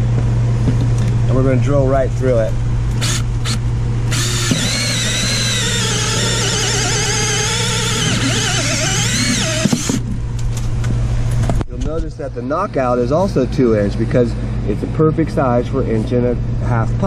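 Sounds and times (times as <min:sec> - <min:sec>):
drill hole saw cutting plastic: 0:03.0 - 0:10.0.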